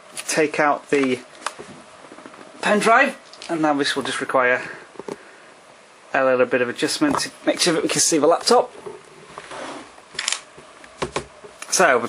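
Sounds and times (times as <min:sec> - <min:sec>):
laptop scraping on desk: 0:08.8 - 0:10.0.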